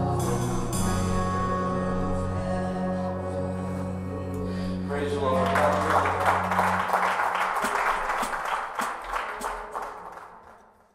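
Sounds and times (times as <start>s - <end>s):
band playing chord: 0.0s - 3.5s
hand-clapping applause: 5.2s - 10.9s.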